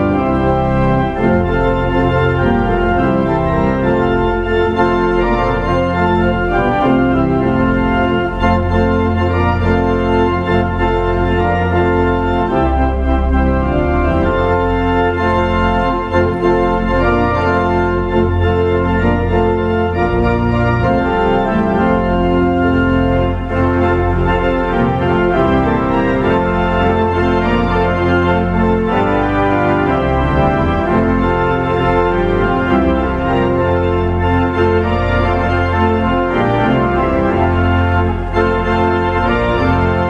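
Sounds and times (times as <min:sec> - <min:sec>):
church organ chords: 0:00.0 - 0:40.0.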